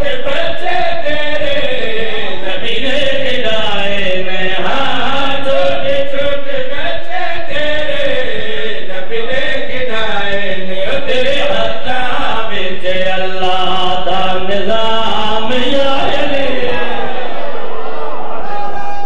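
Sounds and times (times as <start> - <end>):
men chanting into a microphone: 0.0 - 18.0.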